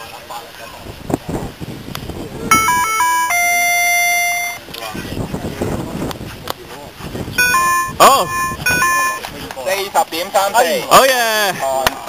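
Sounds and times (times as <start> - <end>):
electronic beeper chime: 2.5 - 4.6, 7.4 - 9.2.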